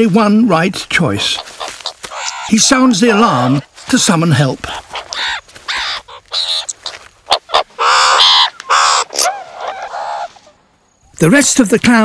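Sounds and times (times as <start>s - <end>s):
meerkat screeching alarm calls: 1.2s - 4.0s, 4.6s - 10.5s.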